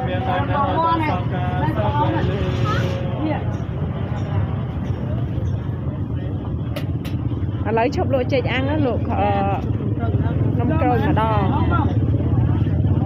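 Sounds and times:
people talking: 0:00.0 - 0:06.8, 0:07.6 - 0:13.0
motorbike traffic rumble: 0:00.0 - 0:13.0.

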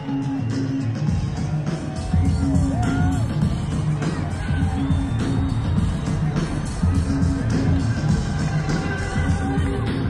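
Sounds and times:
heavy bass: 0:00.0 - 0:10.0
steady drum beat: 0:00.0 - 0:10.0.

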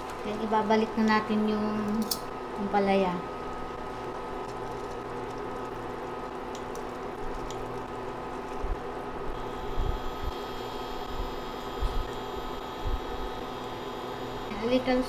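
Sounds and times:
steady electric hum: 0:00.0 - 0:15.0.

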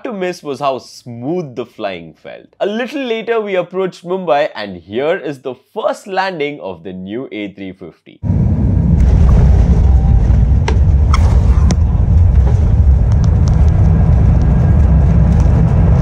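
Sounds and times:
jet engines: 0:08.2 - 0:16.0
wheels rumbling on runway: 0:08.3 - 0:16.0.

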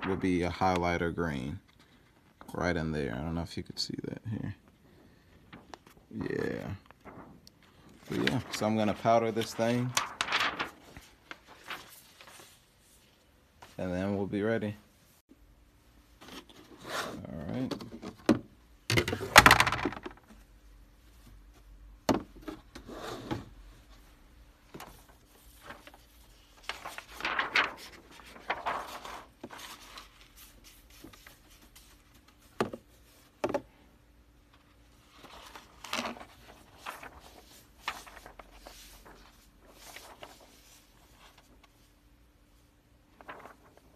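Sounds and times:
plastic sheet crinkling: 0:05.4 - 0:13.0, 0:24.8 - 0:32.1, 0:35.0 - 0:41.7, 0:43.1 - 0:43.9.

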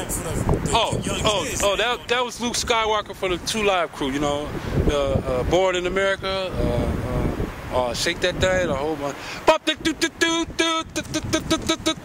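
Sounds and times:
man vocalising short syllables: 0:09.5 - 0:12.0.

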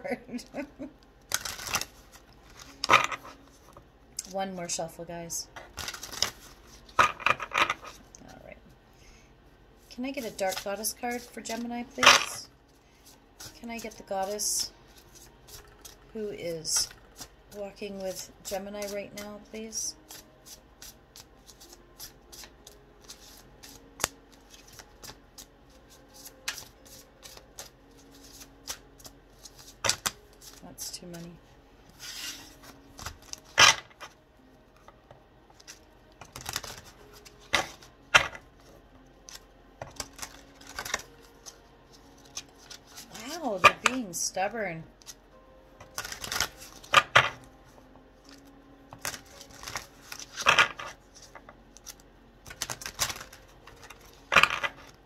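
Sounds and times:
cards being shuffled: 0:01.2 - 0:03.8, 0:05.6 - 0:08.0, 0:10.0 - 0:12.4, 0:13.0 - 0:16.0, 0:16.7 - 0:19.2, 0:20.0 - 0:30.6, 0:31.9 - 0:34.2, 0:34.8 - 0:44.0, 0:45.8 - 0:47.4, 0:48.2 - 0:55.0.

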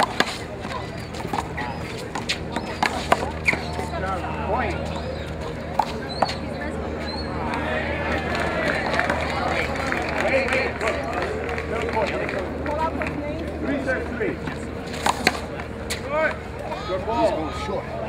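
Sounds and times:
people talking indistinctly: 0:00.0 - 0:18.0.

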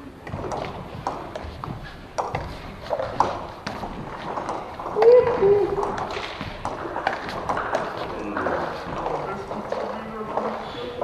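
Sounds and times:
footsteps on hall floor: 0:00.0 - 0:11.0
table tennis ball bouncing: 0:00.2 - 0:11.0.

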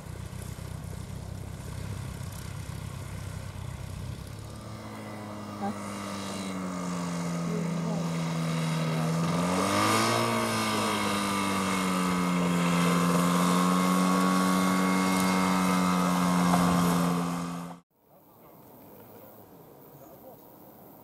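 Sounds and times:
biplane engine low rumble: 0:00.0 - 0:09.6
microlight engine steady hum: 0:00.0 - 0:17.8.

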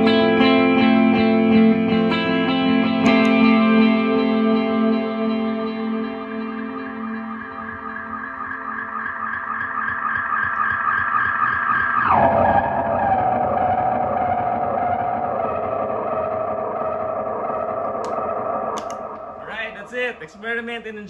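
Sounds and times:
guitar pedal ambient drone: 0:00.0 - 0:20.3
footswitch clicks: 0:03.0 - 0:03.5, 0:17.9 - 0:18.2, 0:18.8 - 0:19.3.

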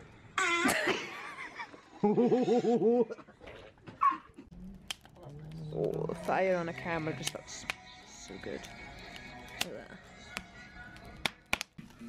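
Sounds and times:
wood fire crackling and popping: 0:04.4 - 0:12.0
faint background music: 0:04.5 - 0:12.0.

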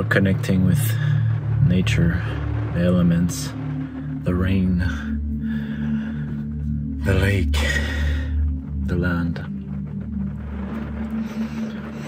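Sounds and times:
low droning background music: 0:00.0 - 0:12.0
rain on car roof: 0:00.0 - 0:12.0.

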